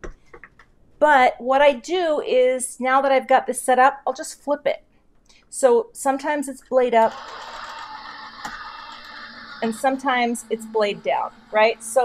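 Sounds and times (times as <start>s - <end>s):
die-cutting machine motor running: 7.0s - 12.0s.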